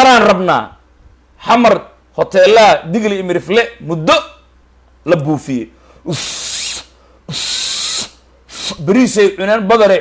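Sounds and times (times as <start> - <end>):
man blowing hissing breaths: 5.8 - 8.9.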